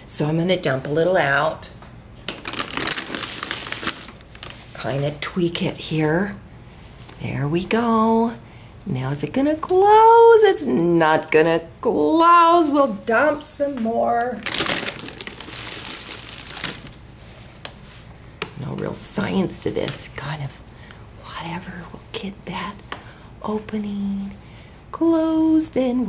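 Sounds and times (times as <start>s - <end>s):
fabric rustling: 2.4s - 5.1s, 13.1s - 18.1s.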